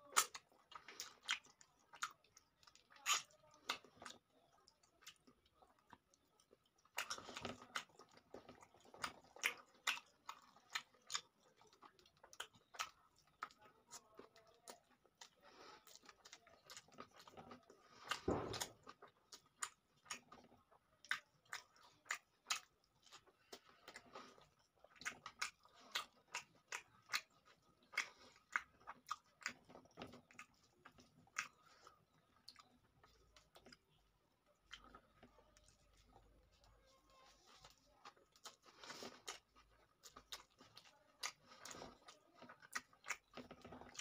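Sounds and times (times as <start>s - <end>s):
chewing and wet eating smacks: 0.0s - 44.0s.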